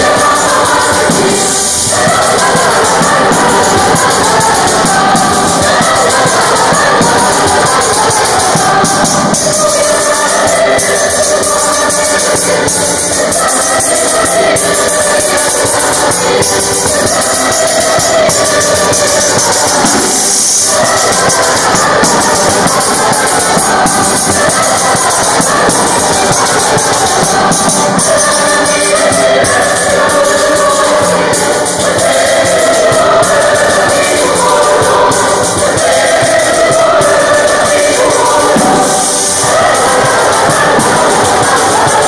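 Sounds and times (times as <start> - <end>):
button accordion: 0.0 - 42.0
choir singing folk song: 0.0 - 42.0
frame drum with jingles: 0.0 - 42.0.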